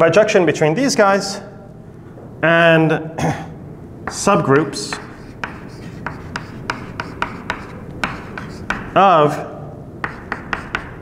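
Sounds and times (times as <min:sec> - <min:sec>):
chalk writing on chalkboard: 0:04.1 - 0:09.0, 0:10.0 - 0:11.0.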